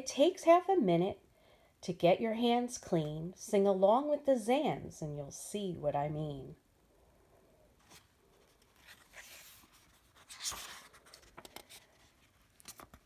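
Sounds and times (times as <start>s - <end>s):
paper pages rustling: 7.8s - 13.0s.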